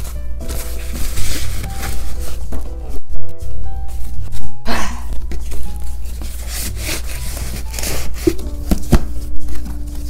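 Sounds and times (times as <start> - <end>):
paper and cardboard scraping: 0.0 - 2.9, 5.2 - 10.0.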